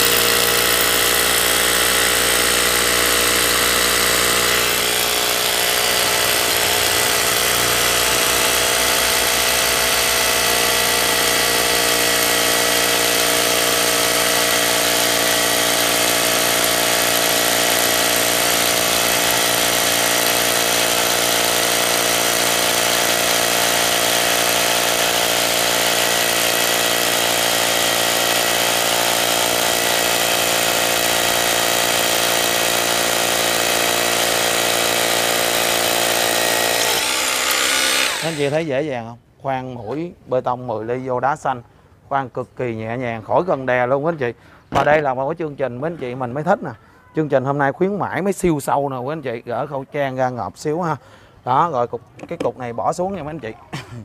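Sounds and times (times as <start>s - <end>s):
hammer drill boring into stone: 0.0s - 38.8s.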